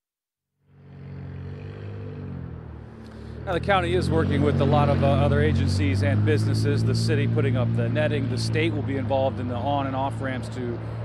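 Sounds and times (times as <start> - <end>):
engine hum: 0.6 - 11.0
road traffic rumble: 0.6 - 11.0.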